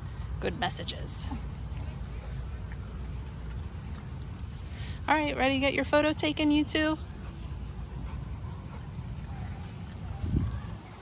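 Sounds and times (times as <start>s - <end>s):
dogs sniffing: 6.7s - 10.8s.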